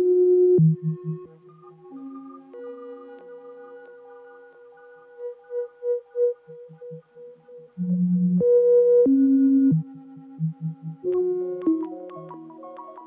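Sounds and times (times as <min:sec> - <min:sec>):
modular synthesizer music: 0:00.0 - 0:13.0.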